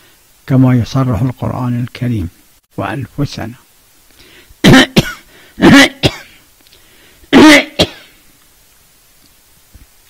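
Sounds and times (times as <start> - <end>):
man clearing throat: 4.6 - 6.4, 7.3 - 8.2
man coughing: 4.6 - 6.4, 7.3 - 8.2.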